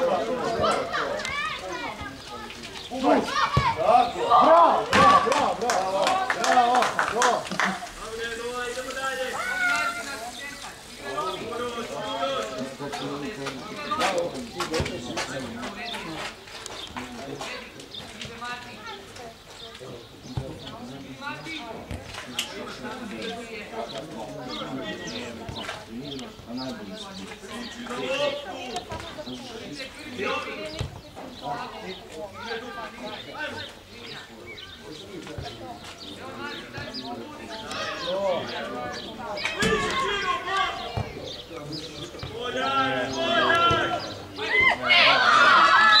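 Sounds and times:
children shouting: 0:00.0 - 0:08.0, 0:09.0 - 0:10.4, 0:37.6 - 0:38.4, 0:39.3 - 0:41.0, 0:43.1 - 0:46.0
voices calling and shouting: 0:00.0 - 0:46.0.

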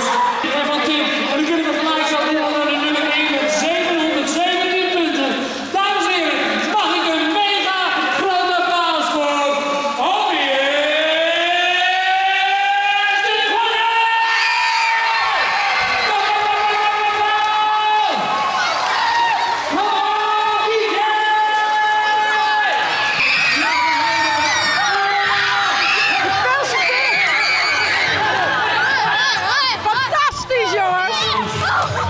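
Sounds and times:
children cheering and screaming: 0:12.1 - 0:32.0.

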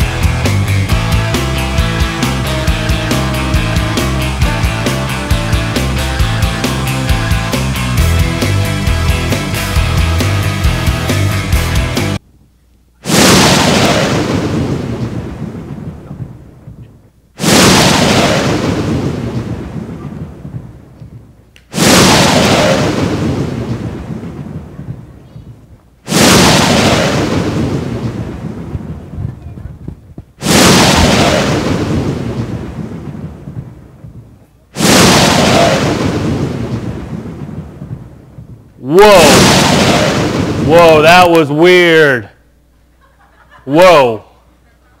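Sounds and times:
thunderclaps rolling away: 0:13.1 - 0:41.3.

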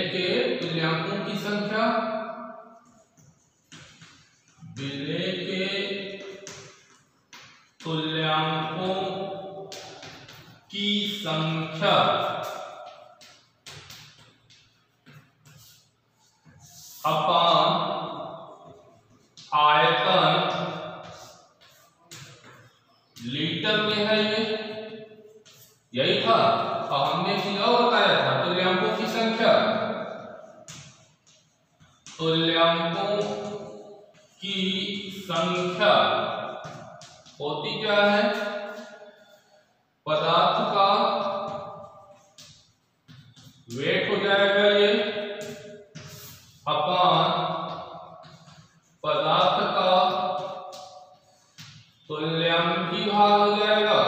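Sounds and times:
man speaking in drawn-out syllables: 0:17.0 - 0:18.2, 0:19.4 - 0:20.8, 0:32.2 - 0:33.8, 0:34.4 - 0:36.3, 0:37.4 - 0:38.5, 0:40.1 - 0:41.5, 0:43.7 - 0:45.2, 0:46.7 - 0:47.8, 0:49.0 - 0:50.5, 0:52.1 - 0:54.0.

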